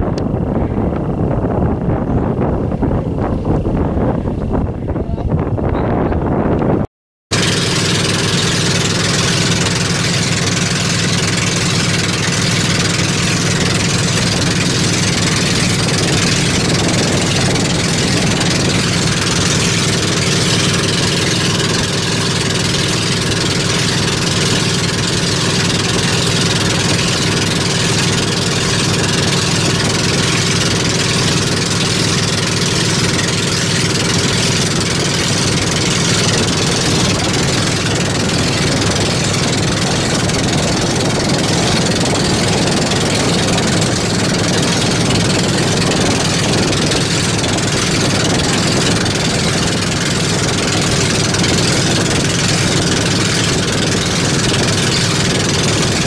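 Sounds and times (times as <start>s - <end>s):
boat engine running: 0.0s - 56.0s
water and wind hiss: 7.3s - 56.0s.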